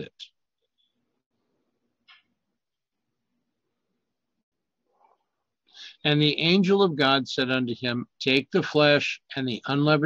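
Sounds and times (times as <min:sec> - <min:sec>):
intake of breath: 0:05.7 - 0:06.0.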